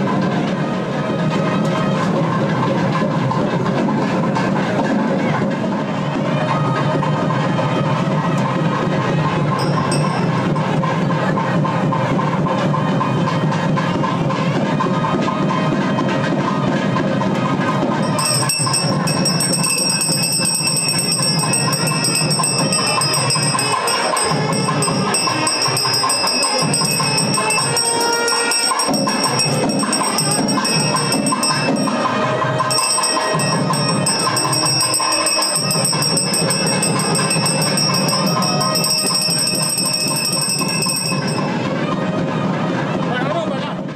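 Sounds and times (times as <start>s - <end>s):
music: 0.0s - 43.9s
bells ringing: 8.4s - 13.4s, 17.6s - 42.0s.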